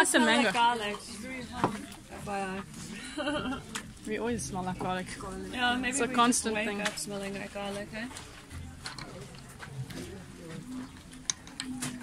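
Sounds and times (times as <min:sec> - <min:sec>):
indistinct background voices: 0:00.0 - 0:12.0.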